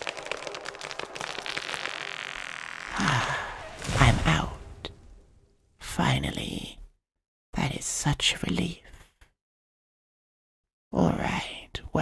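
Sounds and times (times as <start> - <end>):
branches and leaves rustling: 2.8 - 5.8.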